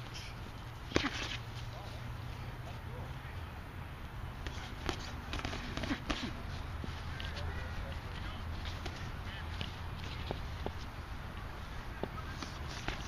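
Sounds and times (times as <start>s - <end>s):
boxing gloves slapping: 0.9s - 1.4s, 4.4s - 6.5s, 12.3s - 13.0s.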